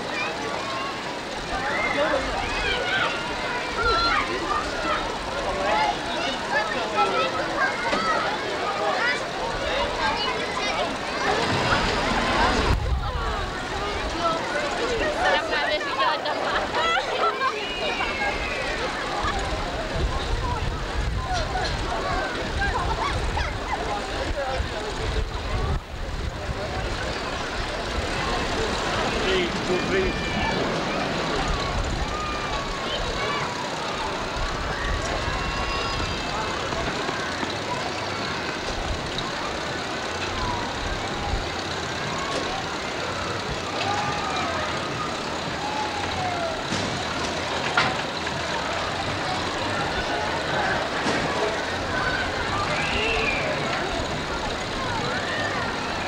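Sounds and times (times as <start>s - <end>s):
crowd voices: 0.0s - 56.0s.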